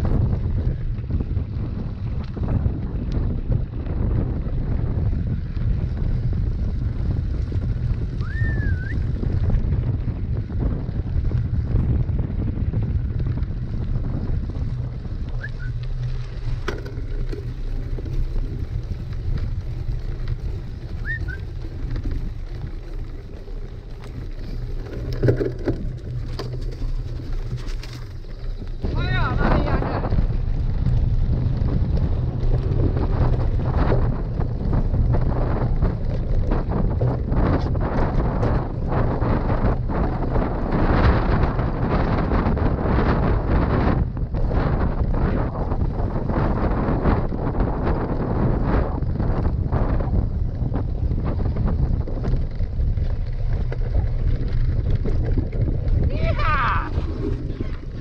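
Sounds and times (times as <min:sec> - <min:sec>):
bike rattling over ground: 0:00.0 - 0:58.0
wind buffeting microphone: 0:00.0 - 0:58.0.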